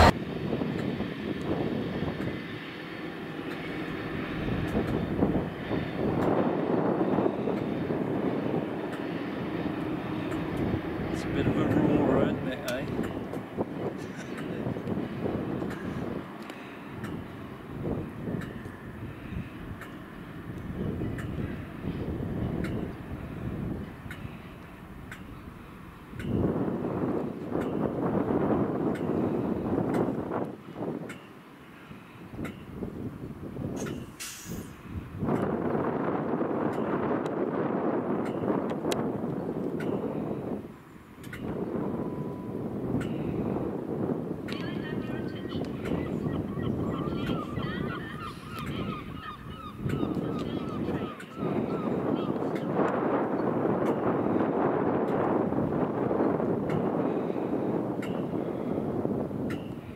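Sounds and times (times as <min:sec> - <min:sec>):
diesel locomotive engine rumble: 0:00.0 - 0:59.9
short hiss: 0:33.8 - 0:34.8.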